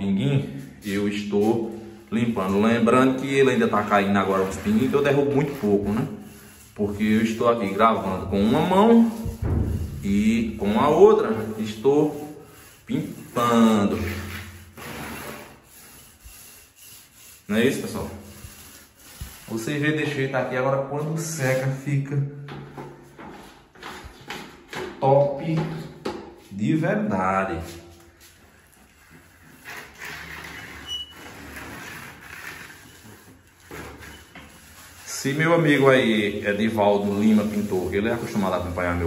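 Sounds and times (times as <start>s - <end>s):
paint roller rubbing on wall: 0.1s - 21.9s, 22.5s - 26.8s, 27.4s - 39.0s.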